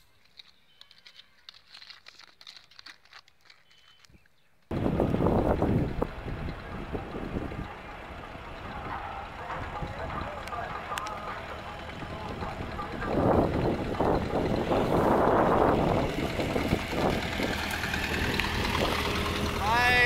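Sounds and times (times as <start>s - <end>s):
car engine humming: 4.7s - 20.0s.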